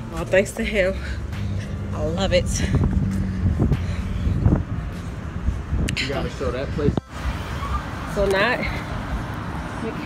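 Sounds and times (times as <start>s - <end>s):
traffic hum: 0.0s - 10.0s
wind buffeting microphone: 1.8s - 7.1s.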